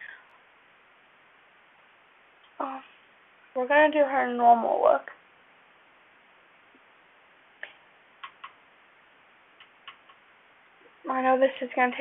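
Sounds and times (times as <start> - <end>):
low room hiss: 0.0 - 12.0.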